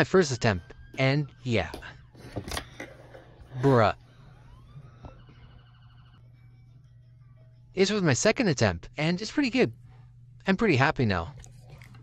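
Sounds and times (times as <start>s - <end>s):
emergency siren wailing: 0.0s - 2.3s, 3.2s - 6.2s
low steady hum: 0.0s - 12.0s.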